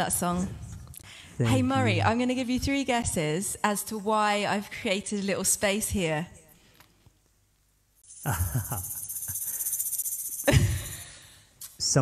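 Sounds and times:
shaker rattling fast: 8.0s - 11.3s.

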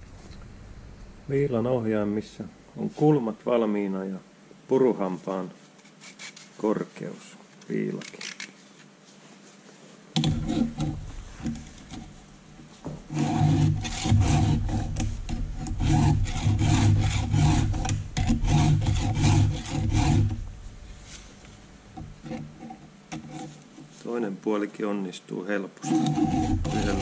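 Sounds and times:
files rasping on saw chain: 6.0s - 6.5s, 10.2s - 11.6s, 13.1s - 20.4s, 22.2s - 23.6s, 25.8s - 27.0s.

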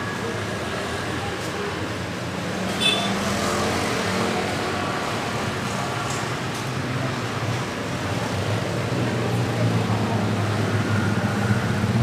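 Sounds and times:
car engines passing: 0.0s - 12.0s
motorcycle engines passing: 0.8s - 12.0s.

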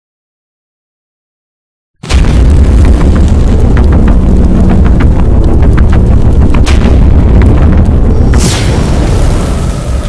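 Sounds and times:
crackles: 2.0s - 10.0s
deep rumbling boom: 2.0s - 10.0s.

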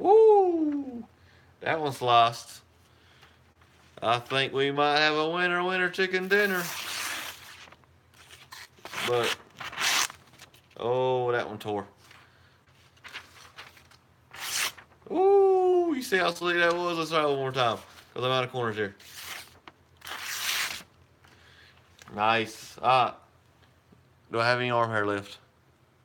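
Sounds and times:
paper crinkling: 6.3s - 10.8s, 12.0s - 15.1s, 19.0s - 20.9s
paper rustling: 6.3s - 10.8s, 12.0s - 15.0s, 16.4s - 20.9s.

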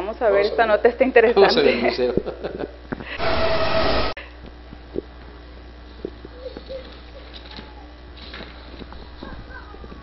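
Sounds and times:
rush of noise with steady tone: 3.2s - 4.2s.

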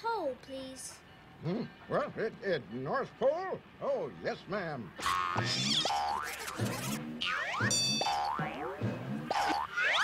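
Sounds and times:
low bass notes: 6.6s - 9.6s.

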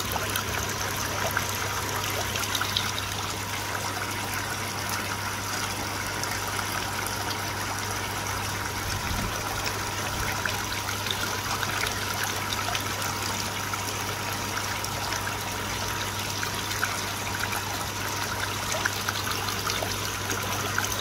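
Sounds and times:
low steady hum: 0.0s - 21.0s
water trickling into pond: 0.0s - 21.0s.

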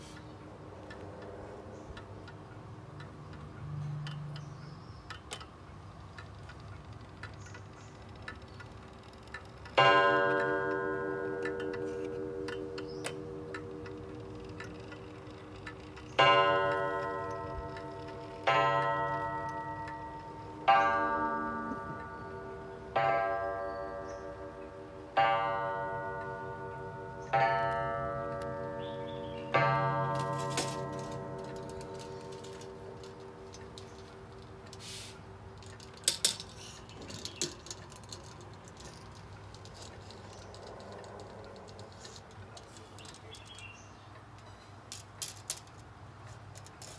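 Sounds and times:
clock ticking: 0.2s - 23.3s.

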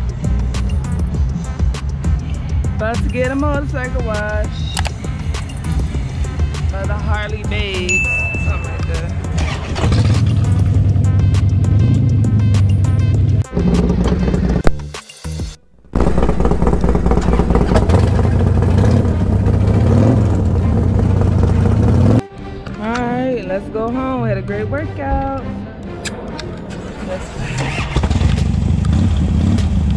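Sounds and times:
background music: 0.0s - 29.9s
motorcycle engine running: 7.1s - 14.8s, 15.8s - 22.2s, 27.9s - 29.9s.

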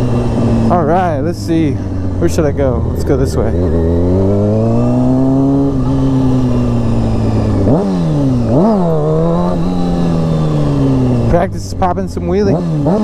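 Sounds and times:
motorcycle engine at road speed: 0.0s - 13.0s.

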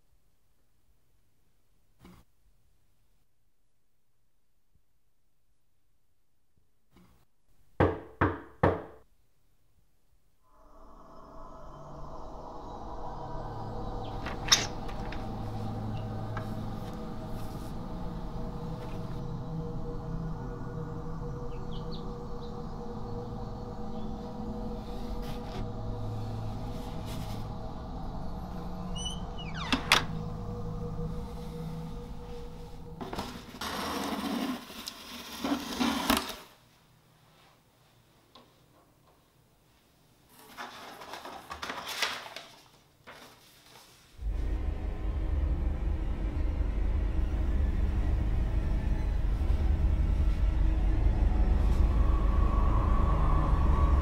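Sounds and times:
knocks on a door: 7.8s - 9.0s
low droning music: 10.5s - 33.9s, 44.2s - 54.0s.

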